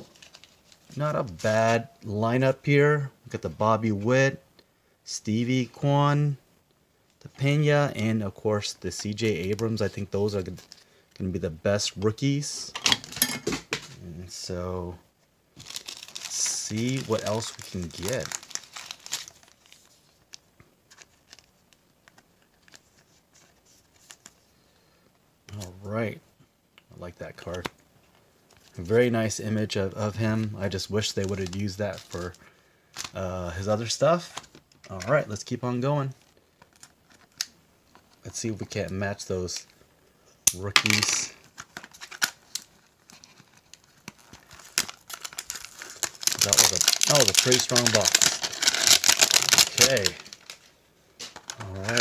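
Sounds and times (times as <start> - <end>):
foil wrapper crinkling and tearing: 0.0 - 1.0, 15.6 - 23.0, 30.2 - 33.2, 40.8 - 52.0
cards being handled: 15.7 - 24.4, 40.5 - 52.0.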